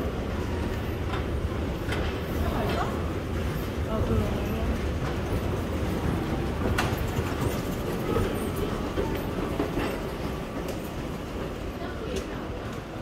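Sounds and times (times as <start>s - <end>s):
train rumbling on rails: 0.0s - 13.0s.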